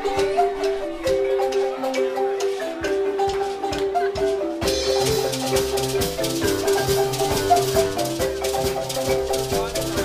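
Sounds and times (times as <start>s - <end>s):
low bass marimba notes: 0.0s - 10.0s
marimba ensemble playing: 0.0s - 10.0s
shaker: 0.0s - 10.0s.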